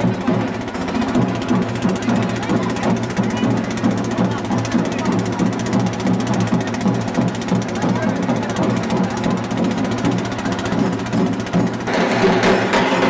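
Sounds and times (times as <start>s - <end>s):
crowd of voices talking: 0.0s - 13.0s
music: 0.0s - 13.0s.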